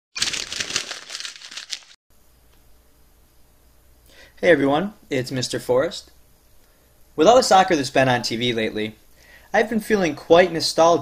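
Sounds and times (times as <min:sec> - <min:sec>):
paper being crumpled: 0:00.2 - 0:02.0.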